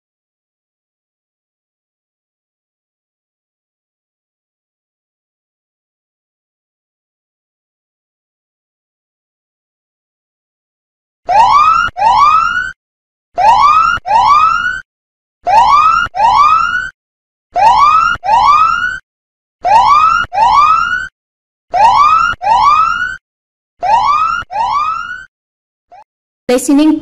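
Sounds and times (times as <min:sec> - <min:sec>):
electronic siren-like alarm: 0:11.3 - 0:12.8, 0:13.4 - 0:14.8, 0:15.4 - 0:17.0, 0:17.6 - 0:19.0, 0:19.6 - 0:21.1, 0:21.7 - 0:23.2, 0:23.8 - 0:25.3.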